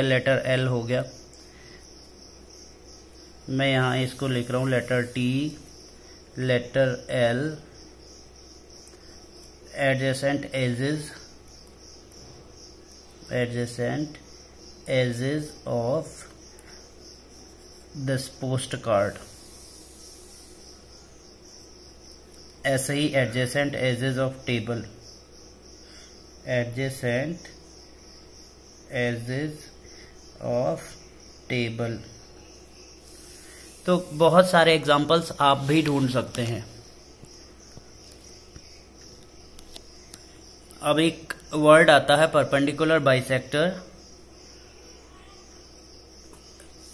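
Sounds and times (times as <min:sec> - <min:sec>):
man talking: 0:00.0 - 0:01.2, 0:03.5 - 0:05.6, 0:06.4 - 0:07.6, 0:13.3 - 0:14.2, 0:14.9 - 0:16.2, 0:18.0 - 0:19.3, 0:22.6 - 0:25.0, 0:26.5 - 0:27.5, 0:28.9 - 0:29.7, 0:30.4 - 0:32.1, 0:33.8 - 0:36.8, 0:40.8 - 0:43.9
high-pitched insect trill: 0:00.0 - 0:46.9.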